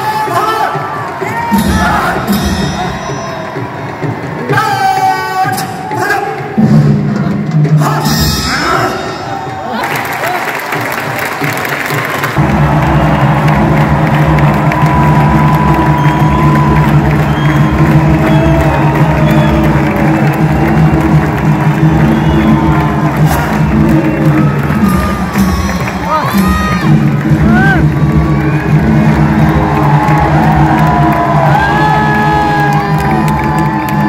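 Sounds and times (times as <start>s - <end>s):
crowd cheering and shouting: 0.0s - 34.0s
music: 0.0s - 34.0s.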